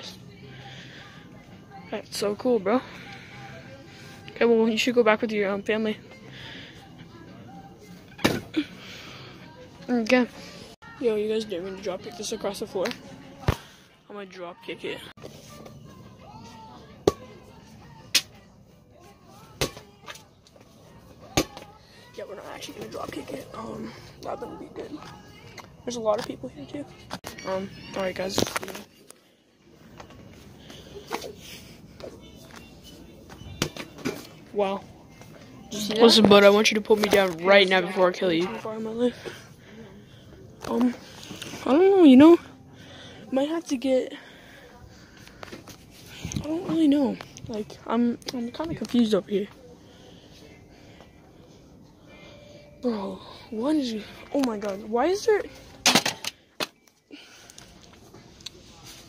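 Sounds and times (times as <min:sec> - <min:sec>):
faint distant voices: 0:00.0 - 0:59.0
store room tone: 0:00.0 - 0:59.0
shop noise: 0:15.1 - 0:59.0.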